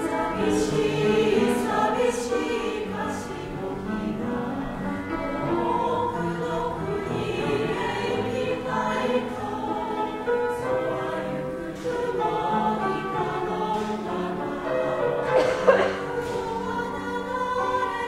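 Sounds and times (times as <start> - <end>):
choir singing: 0.0 - 18.0.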